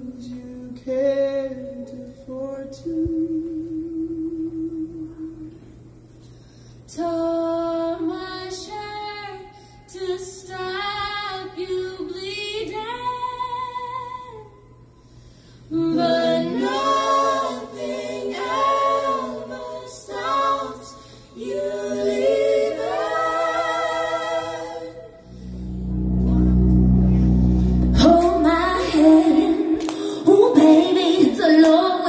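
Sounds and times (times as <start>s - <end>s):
group singing a cappella: 15.7s - 25.6s, 27.8s - 32.0s.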